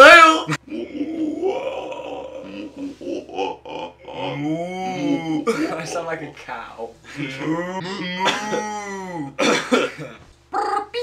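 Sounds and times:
man's falling vocal tone: 0.1s - 5.6s, 7.2s - 9.4s.

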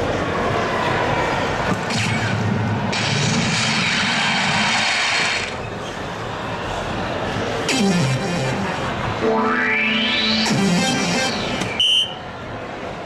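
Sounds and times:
hall background noise: 0.0s - 13.0s
electronic dartboard whooshing effects: 9.2s - 11.8s.

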